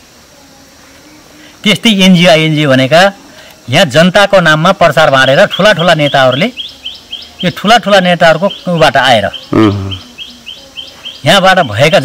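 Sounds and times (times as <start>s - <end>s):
small bird chirping: 5.5s - 12.0s.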